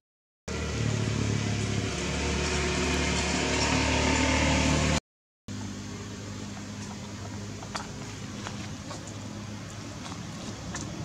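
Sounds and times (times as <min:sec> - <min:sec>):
vehicle engine humming: 0:00.5 - 0:11.0.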